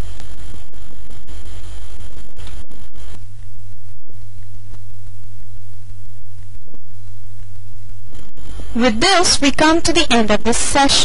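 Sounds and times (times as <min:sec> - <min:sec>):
low hum: 0:00.0 - 0:11.0
scratchy hiss and crackle: 0:00.0 - 0:11.0.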